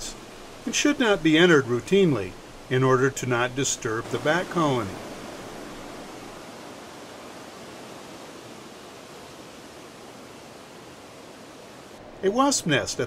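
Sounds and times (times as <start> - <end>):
ocean surf rushing: 0.0 - 13.0.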